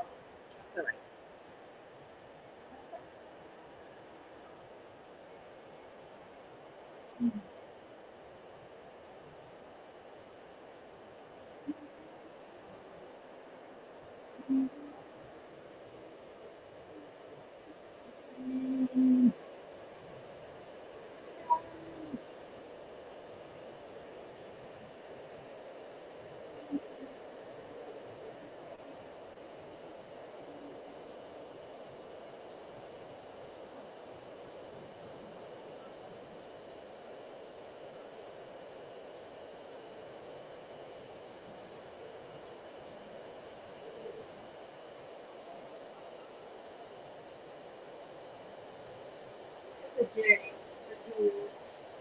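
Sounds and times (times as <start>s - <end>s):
faint room hum: 0.0s - 52.0s.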